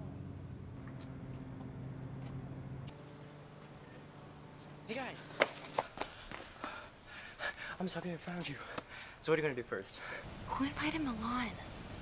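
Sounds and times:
footsteps on hard ground: 0.8s - 2.5s, 5.3s - 6.8s.

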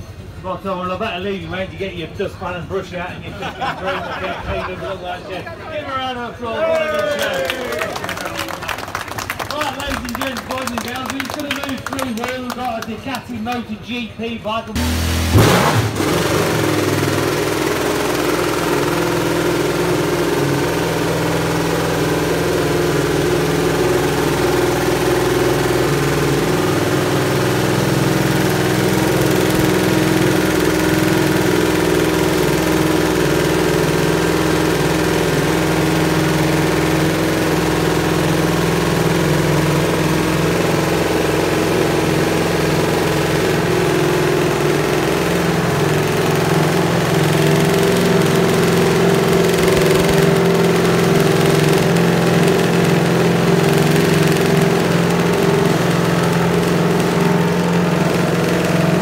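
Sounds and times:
racing motorcycle engine running: 14.7s - 59.0s.

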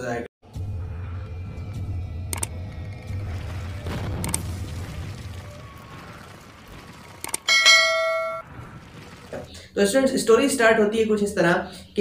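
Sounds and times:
quick clicks: 2.3s - 2.5s, 7.2s - 7.5s
bright bell-like ding: 7.5s - 8.4s.

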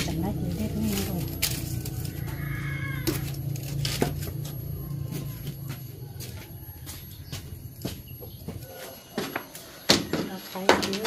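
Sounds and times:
animal's wavering high cry: 2.1s - 3.2s.

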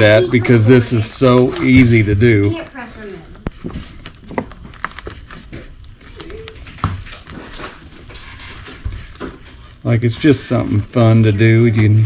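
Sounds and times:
rope through ball clicks and rustles: 0.8s - 12.0s.

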